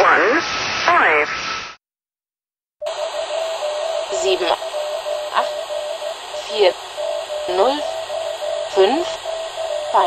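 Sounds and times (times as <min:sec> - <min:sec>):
radio hiss: 0:00.0 - 0:01.8, 0:02.8 - 0:10.0
interrupted continuous tone: 0:02.8 - 0:10.0
voice reading digits: 0:02.8 - 0:10.0.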